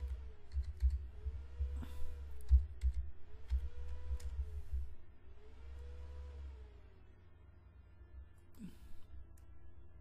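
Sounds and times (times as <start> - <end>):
computer keyboard keystrokes: 0.5 - 1.0, 2.4 - 4.3.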